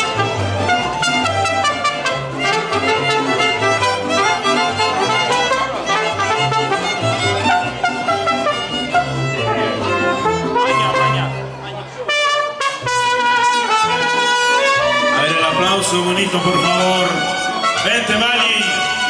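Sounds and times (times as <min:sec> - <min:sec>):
mariachi band playing: 0:00.0 - 0:19.0.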